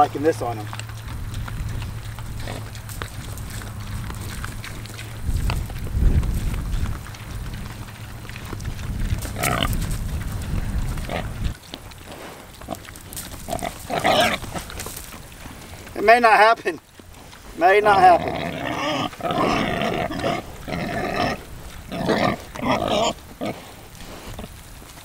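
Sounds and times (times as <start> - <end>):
low rumble: 0.0 - 16.0
pigs grunting: 0.0 - 25.0.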